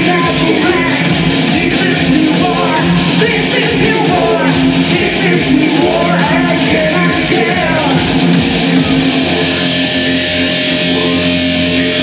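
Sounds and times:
industrial rock band: 0:00.0 - 0:12.0.

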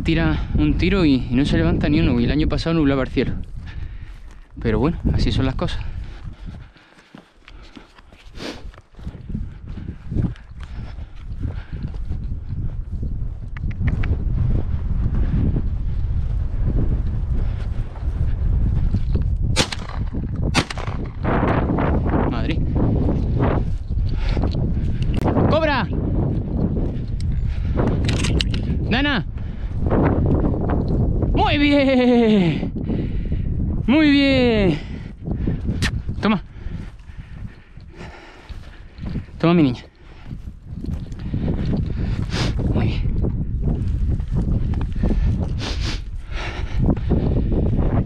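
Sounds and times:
wind buffeting microphone: 0:00.0 - 0:48.0
shotgun shots: 0:19.6 - 0:21.1.

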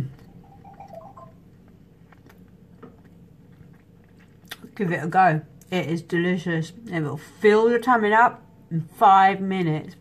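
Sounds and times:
person chewing food: 0:00.0 - 0:04.8.

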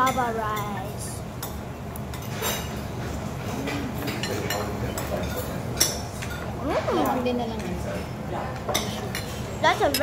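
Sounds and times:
cutlery clinking against dishes: 0:00.0 - 0:00.8, 0:01.4 - 0:10.0.

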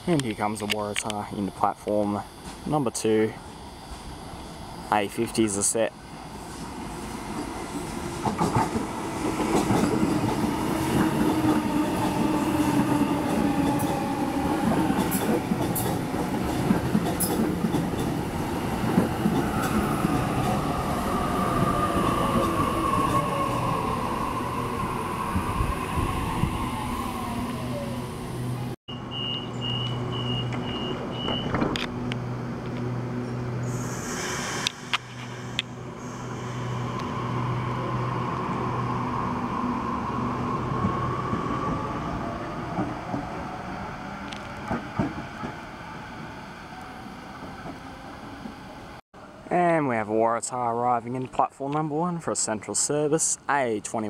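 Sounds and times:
train braking: 0:01.9 - 0:32.0, 0:33.3 - 0:49.0
electric train motor whine: 0:19.4 - 0:40.1
hiss: 0:33.6 - 0:37.6.

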